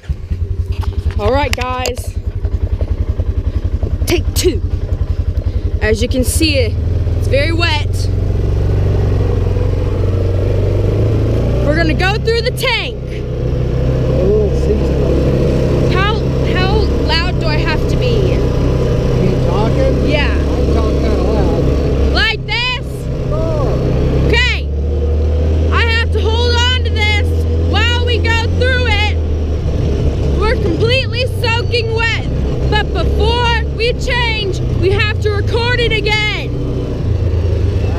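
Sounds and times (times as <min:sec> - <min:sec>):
utility vehicle engine droning: 0:00.0 - 0:37.9.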